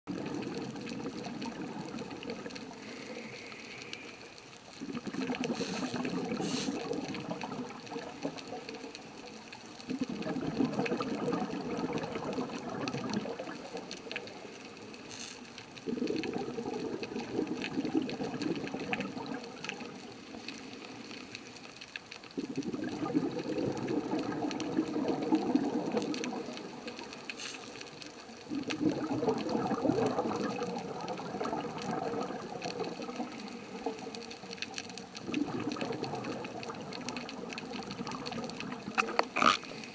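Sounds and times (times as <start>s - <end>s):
underwater exhaled bubbles rushing: 0.1s - 39.9s.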